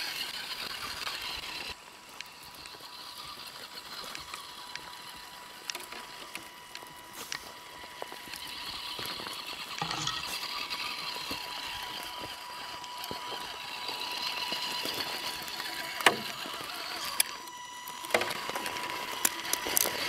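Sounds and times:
electric motor whining: 0.0s - 20.0s.

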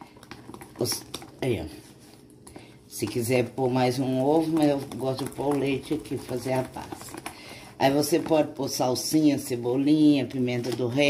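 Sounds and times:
whisk beating batter in plastic tub: 0.0s - 11.0s.

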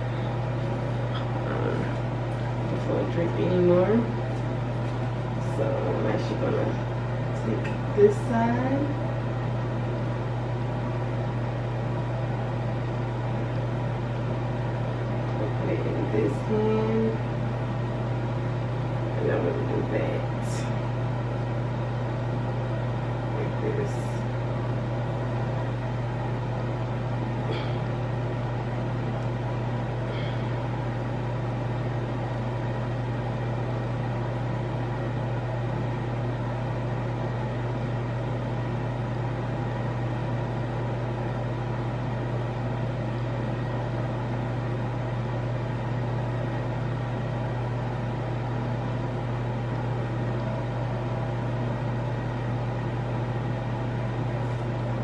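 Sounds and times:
low mechanical hum: 0.0s - 55.0s.

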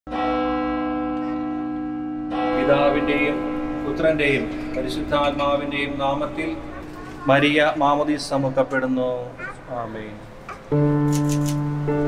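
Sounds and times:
church bell ringing: 0.1s - 9.0s.

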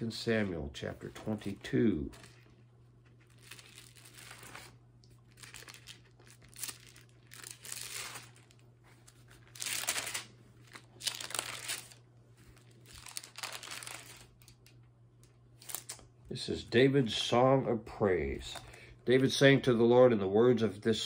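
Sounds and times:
thin pages turning: 1.4s - 14.6s, 15.6s - 16.0s.

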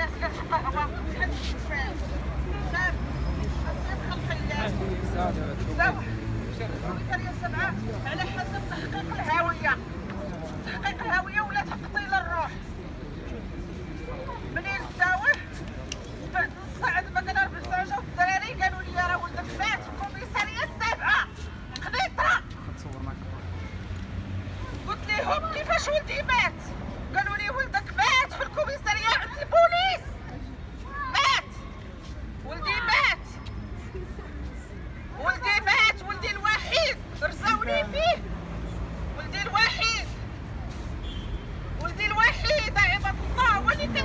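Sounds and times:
street traffic rumble: 0.0s - 44.0s.

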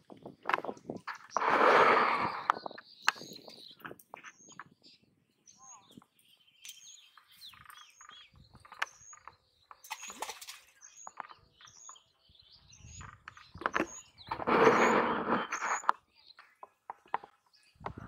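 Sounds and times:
small bird chirping: 0.0s - 18.0s.

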